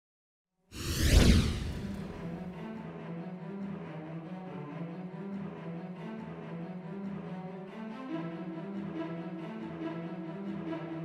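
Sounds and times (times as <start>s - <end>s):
whoosh with deep rumble: 0.8s - 2.4s.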